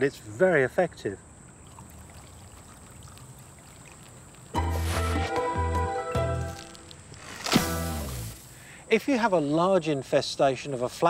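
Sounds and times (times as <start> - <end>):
water trickling onto mulch: 1.3 - 9.3.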